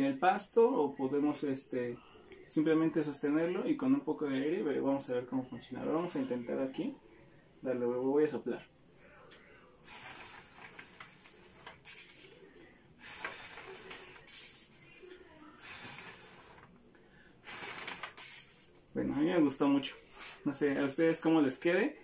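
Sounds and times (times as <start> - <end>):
person blowing puffs of air: 9.8 - 12.3, 13.0 - 14.7, 15.6 - 16.7, 17.4 - 18.7.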